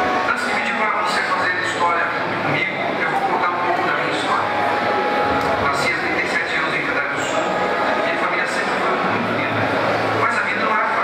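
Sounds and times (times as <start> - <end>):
man's voice over loudspeakers: 0.0 - 11.0
steady noisy background: 0.0 - 11.0.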